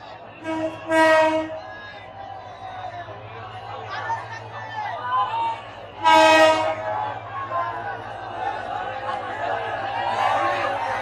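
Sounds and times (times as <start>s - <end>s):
faint crowd chatter: 0.0s - 11.0s
train horn blasts: 0.4s - 1.6s, 6.0s - 6.9s.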